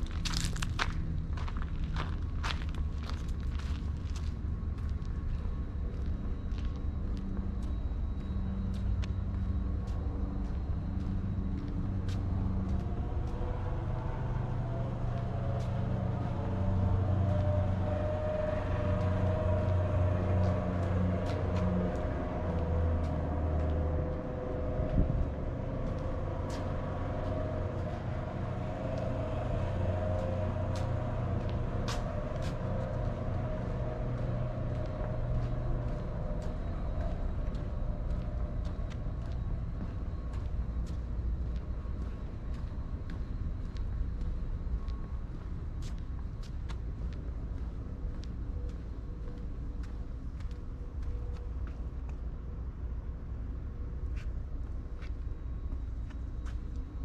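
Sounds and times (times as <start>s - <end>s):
low mechanical hum: 0.0s - 57.0s.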